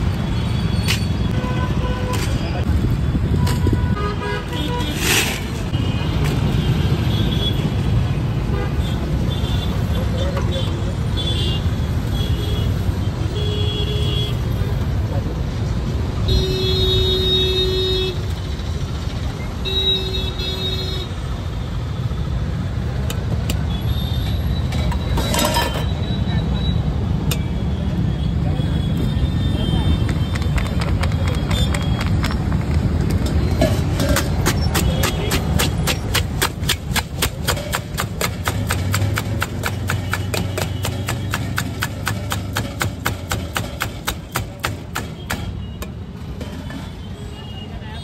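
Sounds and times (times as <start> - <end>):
street traffic rumble: 0.0 - 48.0
vehicle horns honking: 3.4 - 7.7.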